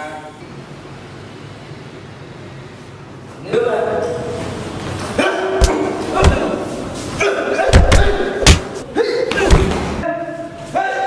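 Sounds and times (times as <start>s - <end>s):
men grunting and shouting: 5.1s - 10.0s
punch impacts: 5.6s - 6.6s, 7.6s - 8.8s.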